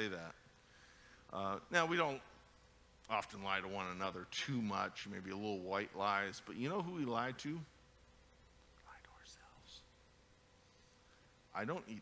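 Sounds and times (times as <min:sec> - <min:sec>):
faint whispered voice: 0:08.8 - 0:09.9.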